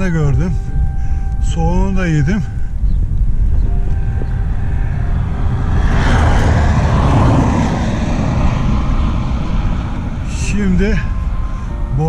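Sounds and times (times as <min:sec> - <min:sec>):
wind rush on microphone: 0:00.0 - 0:12.0
vehicle passing by: 0:03.3 - 0:12.0.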